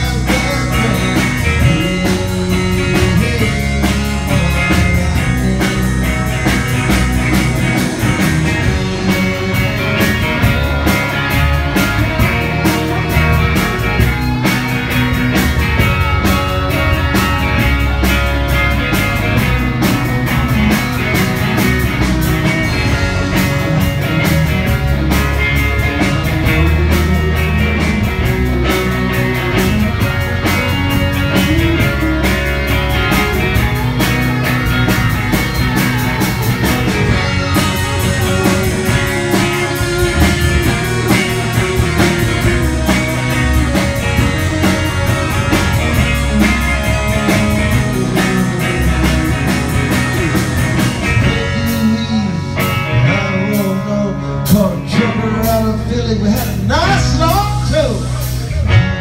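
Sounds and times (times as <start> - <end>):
drum kit beat: 0.0 - 59.0
electric guitars: 0.0 - 59.0.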